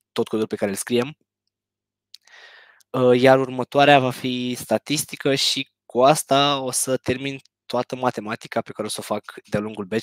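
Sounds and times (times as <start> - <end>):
short intake of breath: 2.2 - 2.8.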